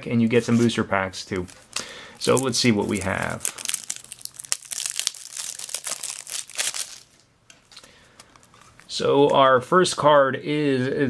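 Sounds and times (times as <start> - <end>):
plastic wrapping crinkling: 1.3 - 9.0.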